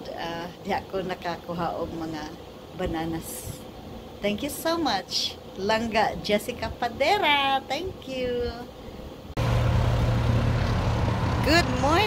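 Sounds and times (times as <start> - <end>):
car road and engine drone: 9.4 - 12.0.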